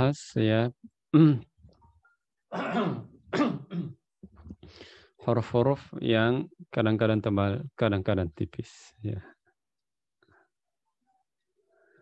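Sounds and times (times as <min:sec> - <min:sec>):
man coughing: 0:02.5 - 0:04.0.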